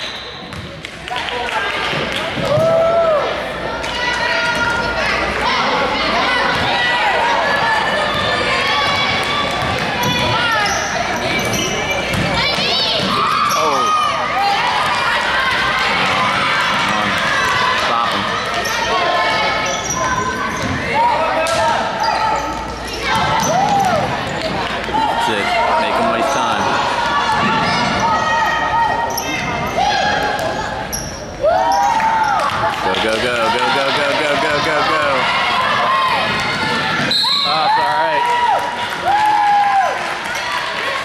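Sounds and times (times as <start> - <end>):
sneakers squeaking: 0.0 - 0.8, 7.9 - 14.2, 18.4 - 24.6, 26.1 - 32.6
spectators chatting: 0.0 - 39.2.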